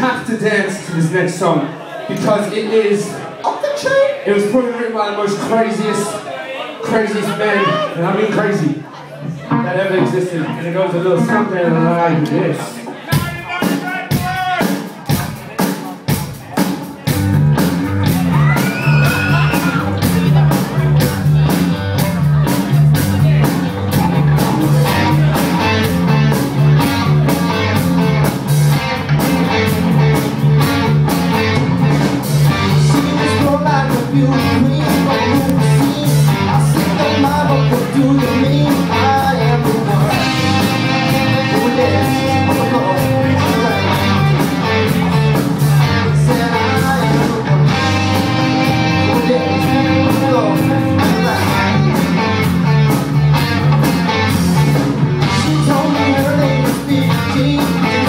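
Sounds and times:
bass guitar: 0:07.6 - 0:58.0
electric guitars: 0:09.2 - 0:12.9, 0:17.0 - 0:58.0
steady drum beat: 0:12.8 - 0:58.0.

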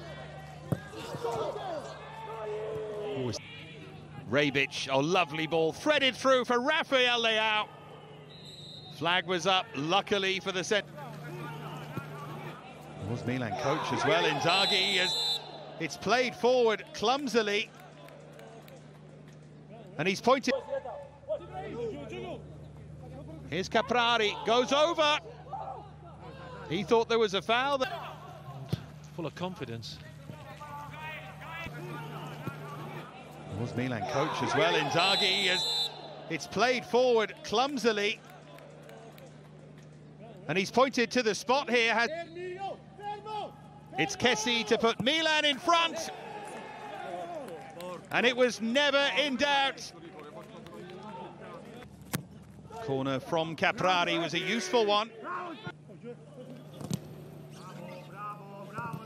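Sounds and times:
players shouting calls: 0:00.0 - 0:17.0, 0:23.7 - 0:26.8, 0:30.2 - 0:38.0, 0:41.8 - 0:47.6, 0:53.9 - 0:55.8
steady low hum: 0:21.2 - 0:36.5.

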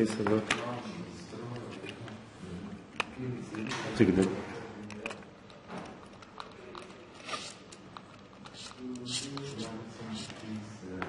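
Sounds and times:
screwdriver rasping scrapes: 0:06.7 - 0:10.4.

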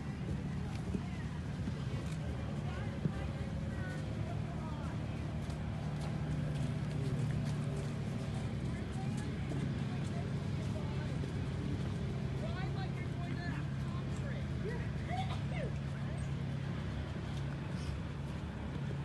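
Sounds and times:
low engine-like hum: 0:00.0 - 0:19.0.

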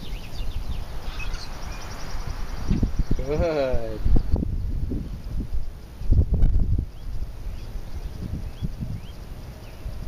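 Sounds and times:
bird trilling rapidly: 0:00.0 - 0:04.4
small birds chirping: 0:00.0 - 0:10.0
wind rumbling on microphone: 0:00.0 - 0:10.0.

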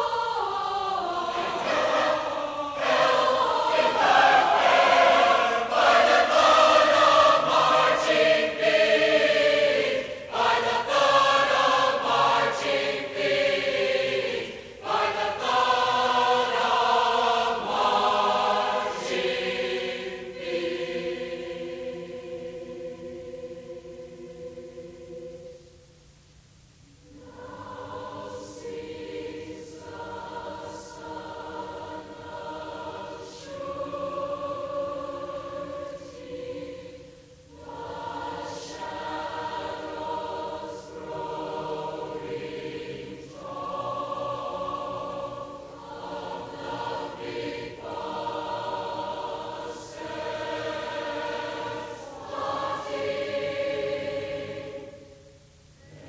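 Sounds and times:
choir singing sustained chords: 0:00.0 - 0:56.0.

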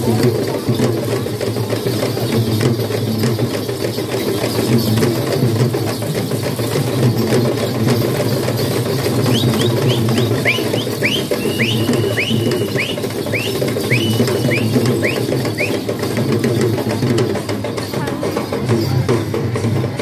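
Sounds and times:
procession drumming: 0:09.0 - 0:17.2
high whistle chirps: 0:09.2 - 0:15.9.

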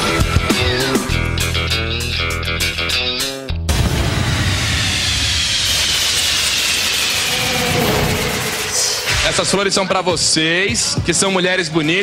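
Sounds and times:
whoosh rushing hiss: 0:04.4 - 0:09.4.

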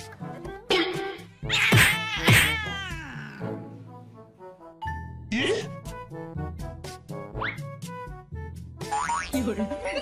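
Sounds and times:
background music: 0:00.0 - 0:10.0
cat yowling: 0:01.5 - 0:03.4.

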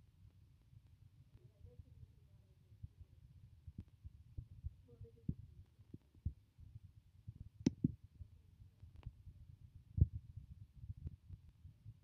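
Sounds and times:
faint low rumble: 0:00.0 - 0:12.0.

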